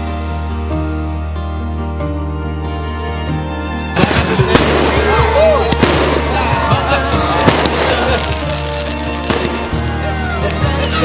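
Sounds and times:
music track: 0.0 - 11.0
crowd shouting and cheering: 4.0 - 11.0
fireworks bangs and crackles: 4.0 - 11.0.

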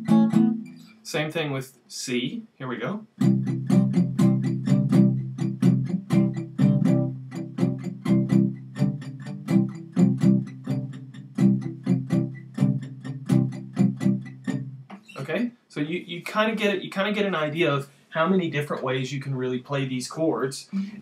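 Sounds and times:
acoustic guitar strumming: 0.0 - 1.0, 3.2 - 15.2.

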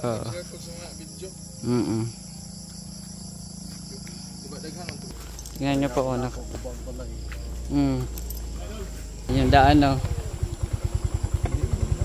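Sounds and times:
insects trilling: 0.0 - 12.0
person speaking: 3.8 - 10.1.

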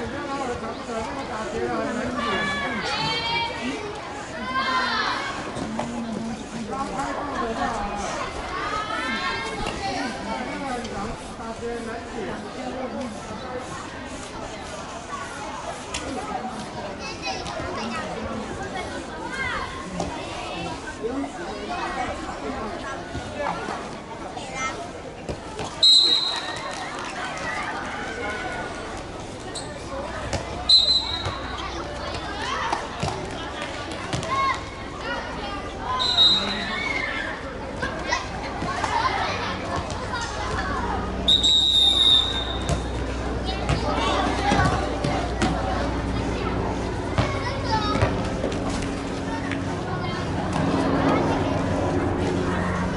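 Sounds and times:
children calling and chattering: 0.0 - 52.9.

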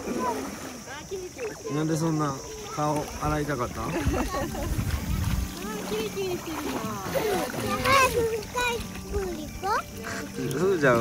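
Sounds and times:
young children's voices: 0.0 - 3.0, 4.2 - 10.2
pool water splashing: 0.0 - 11.0
high-pitched child's voice: 7.6 - 9.9.

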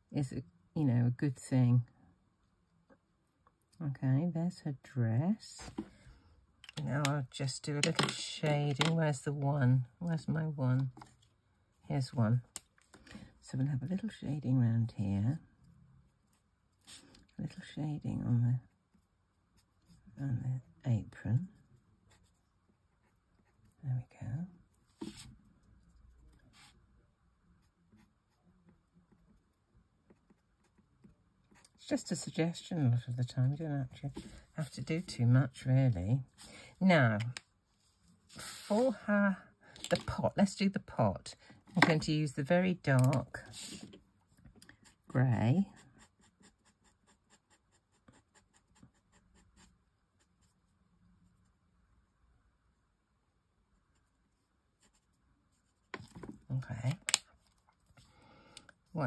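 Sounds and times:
marker strokes on paper: 24.9 - 25.4, 37.7 - 39.0.

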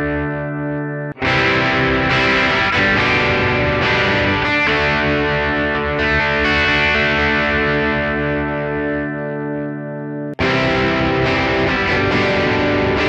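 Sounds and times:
overdriven electric guitar strumming: 0.0 - 13.0.

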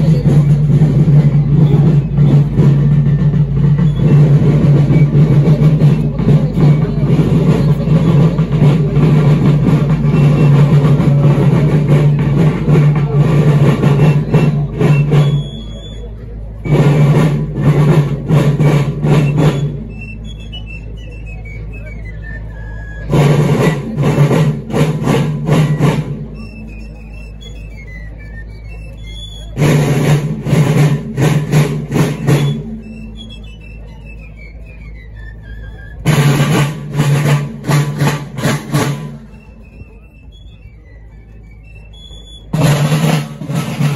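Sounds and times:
drums: 0.0 - 43.9
marching band playing: 0.0 - 43.9
high whistling notes: 13.9 - 17.1, 18.7 - 24.0, 25.5 - 30.2, 32.0 - 37.3, 38.0 - 43.9.

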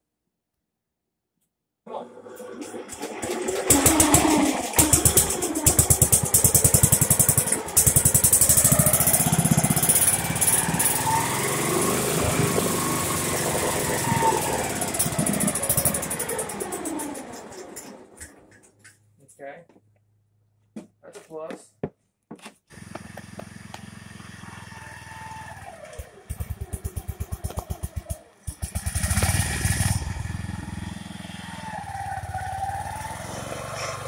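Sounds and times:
small engine cranking and running: 2.1 - 19.0, 22.7 - 34.0.

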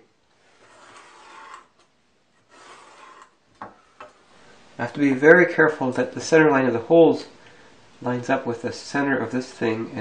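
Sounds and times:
pen drawing along steel square: 0.6 - 1.8, 2.4 - 3.4.

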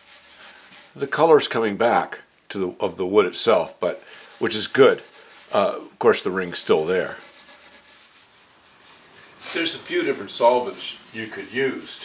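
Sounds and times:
steel wool rubbing on wood: 0.0 - 1.5, 3.8 - 12.0.

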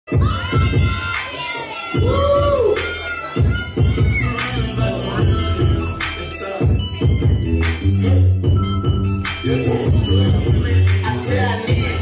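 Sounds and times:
crowd cheering and shouting: 0.1 - 12.0
hip hop beat: 0.1 - 12.0.

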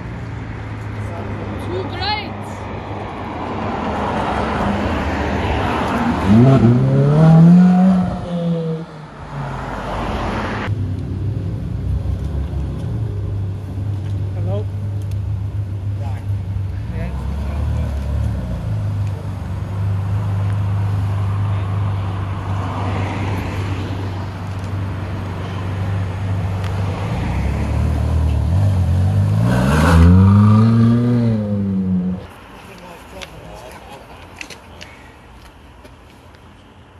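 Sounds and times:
car engine idling and revving: 5.4 - 32.8.

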